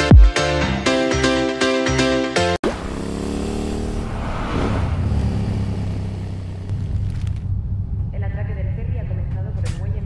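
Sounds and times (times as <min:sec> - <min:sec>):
motorbike engine running: 0:02.6 - 0:04.2, 0:04.9 - 0:08.0.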